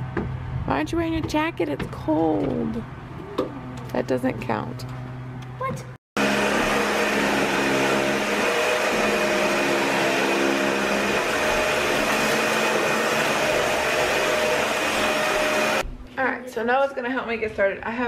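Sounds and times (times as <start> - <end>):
vacuum cleaner running: 6.2 - 15.8.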